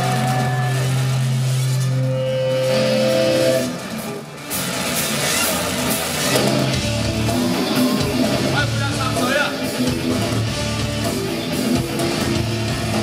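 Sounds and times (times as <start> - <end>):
electric guitar: 0.0 - 13.0
live rock band playing: 0.0 - 13.0.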